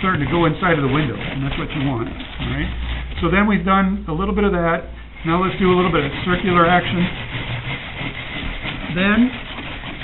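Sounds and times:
brush scrubbing glass panel: 0.0s - 3.7s, 4.4s - 10.0s.

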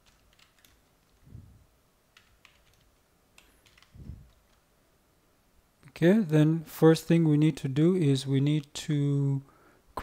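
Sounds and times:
keyboard typing: 0.0s - 1.2s, 2.1s - 4.6s.

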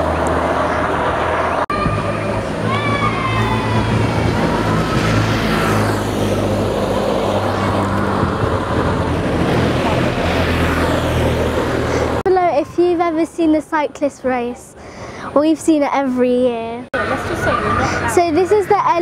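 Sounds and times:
motorcycles passing: 0.0s - 19.0s
street din: 0.0s - 19.0s
crowd voices: 11.8s - 19.0s
girl speaking: 12.2s - 19.0s.

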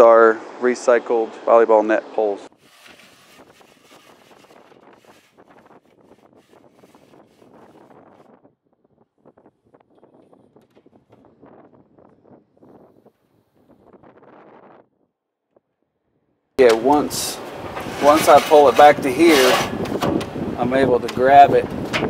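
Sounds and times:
wind buffeting microphone: 2.5s - 15.1s, 16.6s - 22.0s.

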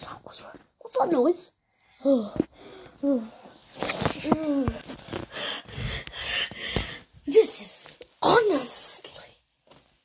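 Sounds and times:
person gasping breaths: 1.7s - 3.4s, 5.1s - 7.2s.

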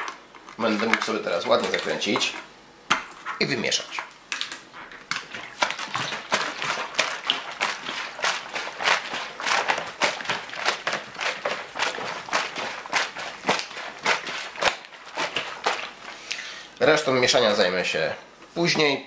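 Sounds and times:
liquid sloshing in plastic bottle: 0.0s - 2.5s, 3.1s - 17.6s.

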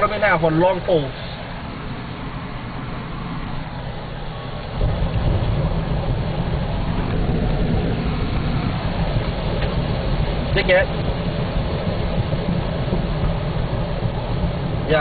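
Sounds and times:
car road noise rumble: 0.0s - 15.0s.

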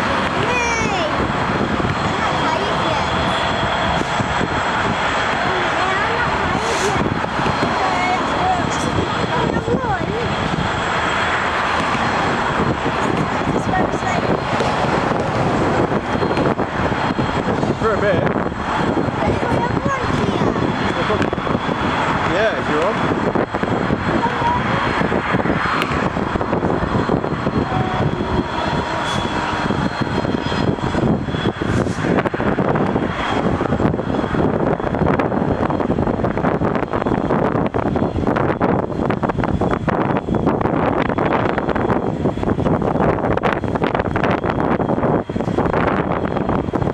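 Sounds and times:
diesel locomotive engine drone: 0.0s - 46.9s.

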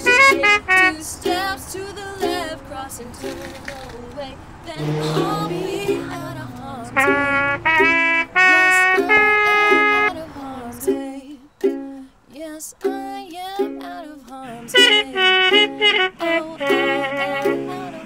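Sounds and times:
woman singing held notes: 0.0s - 7.6s, 8.4s - 18.0s
ukulele plucked and strummed: 0.0s - 18.0s.

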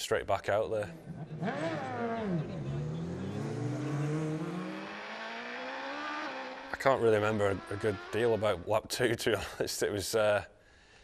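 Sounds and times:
motorcycle engine pulling away: 1.1s - 8.2s.

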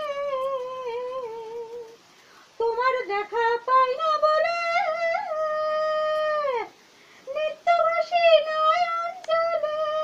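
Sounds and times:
woman singing solo: 2.6s - 10.0s.

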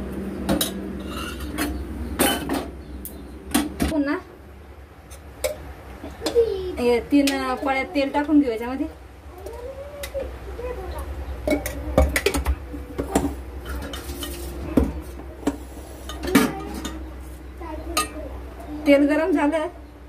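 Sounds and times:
pots and utensils clinking: 0.5s - 2.7s, 5.1s - 6.4s, 11.4s - 17.2s, 17.8s - 19.4s.

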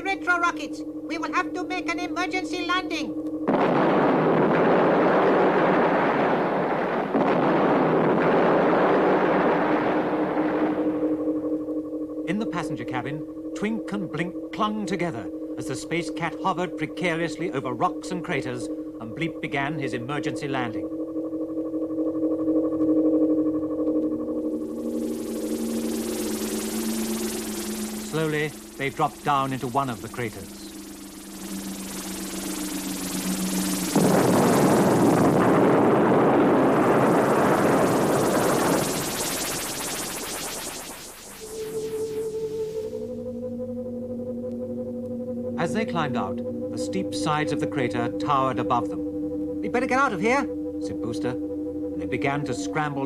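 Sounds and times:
electronic spaceship hum: 0.0s - 53.0s
cartoon rocket blast: 3.5s - 11.1s, 24.6s - 43.1s.

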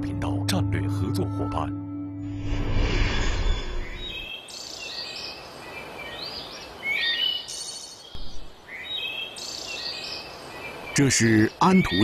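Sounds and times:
low rumble: 1.7s - 4.2s
outdoor ambience hiss: 2.4s - 12.0s
birds chirping and calling: 3.0s - 12.0s.

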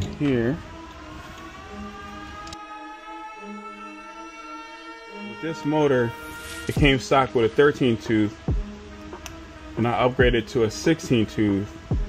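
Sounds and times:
music of held notes: 0.0s - 12.0s.

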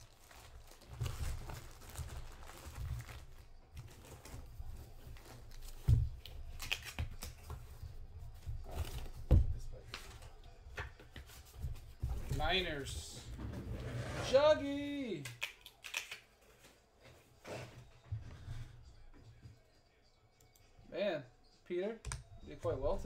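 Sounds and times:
plastic packaging crinkling: 0.0s - 5.7s.

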